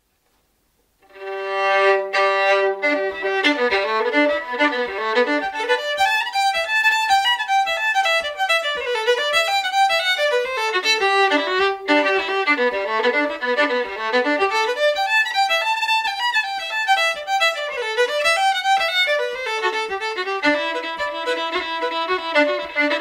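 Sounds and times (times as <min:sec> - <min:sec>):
solo fiddle playing a reel: 0:01.0 - 0:23.0.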